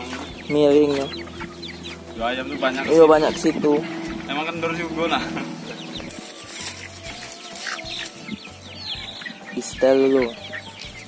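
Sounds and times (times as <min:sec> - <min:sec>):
young roosters clucking: 0:00.0 - 0:11.0.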